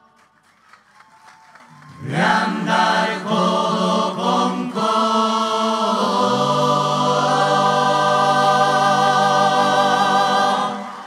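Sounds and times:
choir singing: 2.0 - 11.0.

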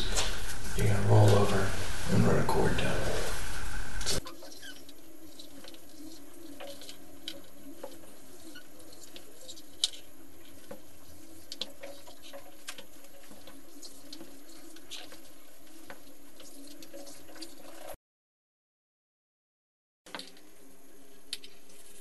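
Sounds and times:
small clicks and scratchy rustles: 0.0 - 18.0, 20.1 - 22.0
steady low hum: 0.0 - 18.0.

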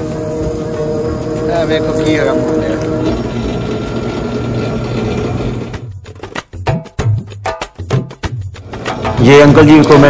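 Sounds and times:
sugarcane crushed in rollers: 0.0 - 5.8
juicer motor hum: 0.0 - 6.0.

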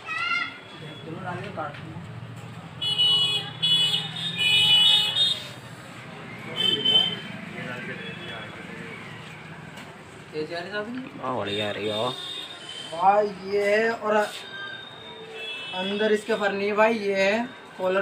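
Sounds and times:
traffic rumble: 0.0 - 14.2
vehicle horns honking: 2.8 - 5.6, 6.4 - 8.7, 11.4 - 13.1, 14.3 - 16.4.

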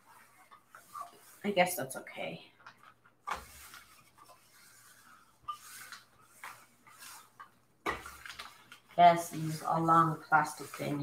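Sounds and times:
iron scraping across paper: 3.2 - 11.0.

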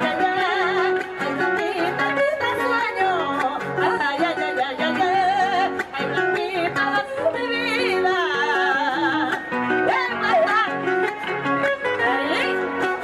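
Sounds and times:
acoustic guitar plucking: 0.0 - 13.0
woman singing with vibrato: 0.0 - 13.0.

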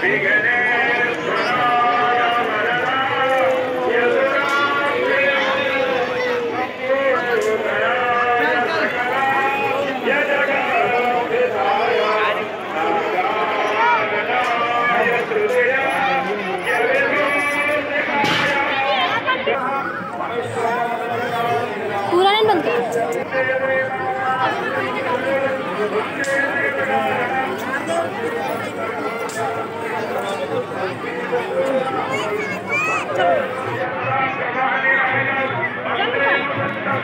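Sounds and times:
crowd voices: 0.0 - 37.0.

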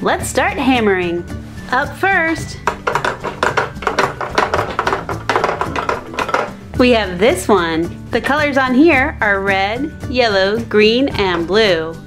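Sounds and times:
faint background music: 0.0 - 12.0
toy mallet knocking pegs: 2.7 - 6.7.

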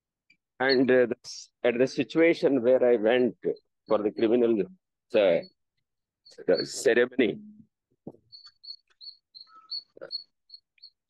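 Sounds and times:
small bird chirping: 8.2 - 11.0.

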